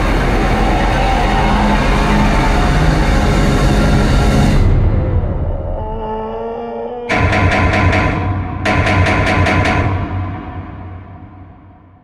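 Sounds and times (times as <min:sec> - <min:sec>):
rhythmic mechanical pulsing: 0:07.1 - 0:10.8.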